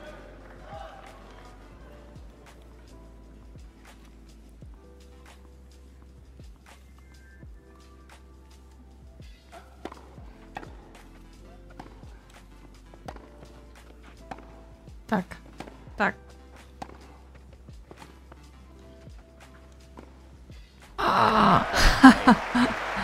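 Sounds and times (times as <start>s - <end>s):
tennis balls struck by racquets: 0.0s - 7.0s, 9.0s - 21.0s
faint soft background music: 0.0s - 23.0s.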